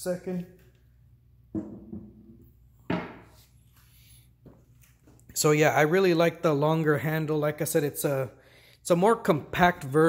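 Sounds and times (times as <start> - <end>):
hard object put down: 1.6 - 2.1.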